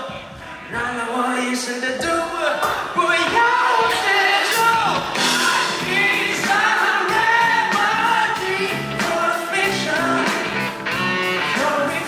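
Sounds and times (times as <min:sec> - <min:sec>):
man singing into a microphone: 0:00.0 - 0:10.7, 0:11.4 - 0:12.0
live band music: 0:00.0 - 0:12.0.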